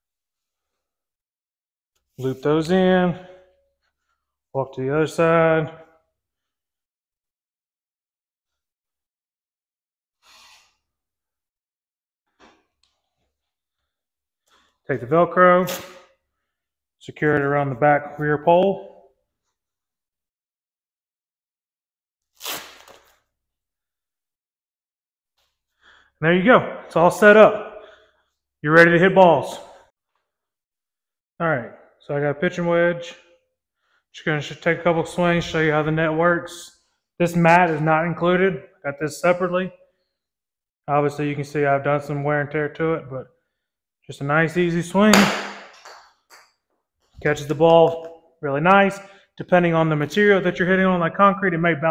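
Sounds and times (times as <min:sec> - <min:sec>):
velcro strap ripping open: 0:15.6 - 0:16.1, 0:22.3 - 0:23.3.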